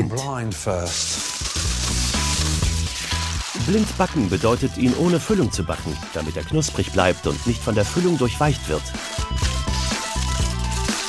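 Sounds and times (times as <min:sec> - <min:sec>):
background music: 0:00.0 - 0:11.0
aluminium foil crinkling: 0:00.9 - 0:11.0.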